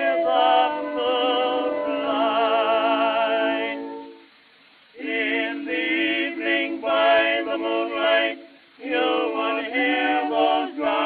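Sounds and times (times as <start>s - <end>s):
male vocal quartet singing: 0.0s - 4.2s, 5.0s - 11.0s.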